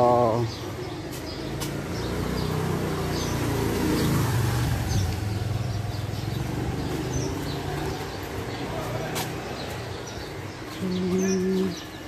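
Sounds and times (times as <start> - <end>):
motorcycle engine passing by: 1.2 - 10.2.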